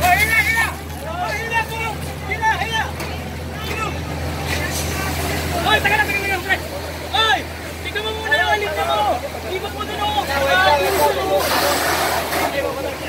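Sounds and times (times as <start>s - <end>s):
people calling out and talking: 0.0s - 13.0s.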